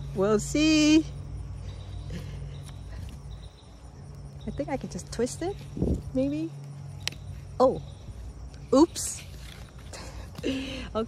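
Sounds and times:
steady low hum: 0.0s - 11.0s
leaves rustling and ticking: 1.5s - 11.0s.

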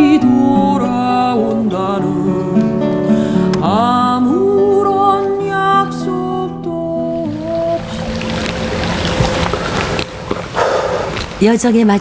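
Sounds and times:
stream rushing over rocks: 7.2s - 11.4s.

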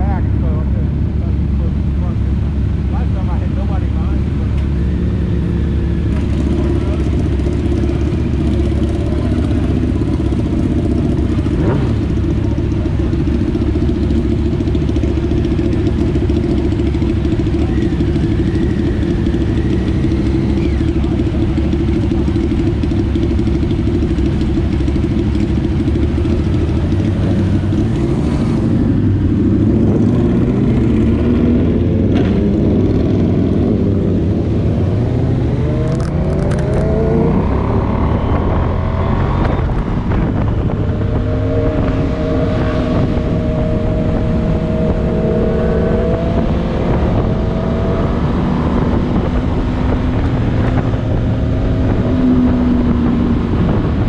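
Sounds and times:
motorcycle engines idling: 0.0s - 45.4s
motorcycles revving and pulling away: 0.0s - 54.0s.

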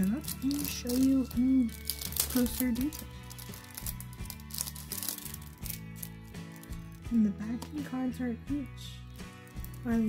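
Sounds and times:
plastic sleeve crinkling: 0.0s - 7.8s, 9.2s - 10.0s
background music: 0.0s - 10.0s.

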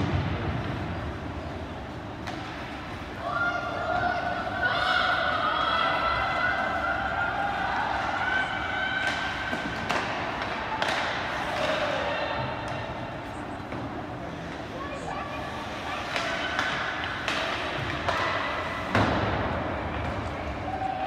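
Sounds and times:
pucks and sticks knocking boards: 2.2s - 2.9s, 9.0s - 12.8s, 16.0s - 20.5s
spectators shouting and cheering: 3.2s - 13.0s.

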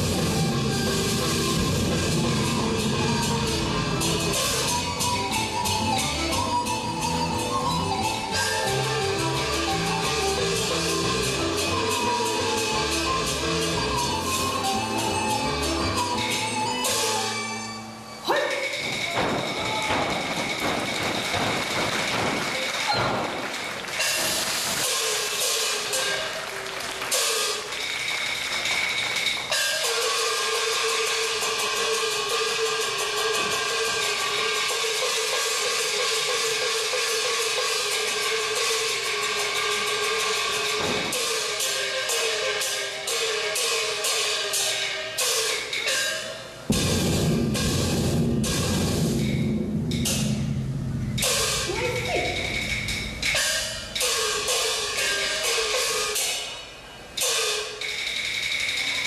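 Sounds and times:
opera stage music: 0.0s - 49.2s
percussion strikes: 0.0s - 59.0s.

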